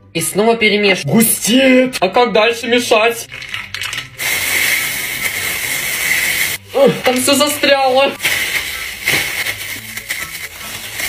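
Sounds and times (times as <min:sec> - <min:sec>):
loud hiss with high tone: 0:04.2 - 0:06.9.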